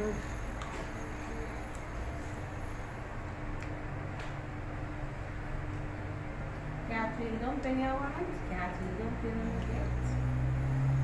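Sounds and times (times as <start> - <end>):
low background rumble: 0.0 - 10.8
faint hum: 0.0 - 11.0.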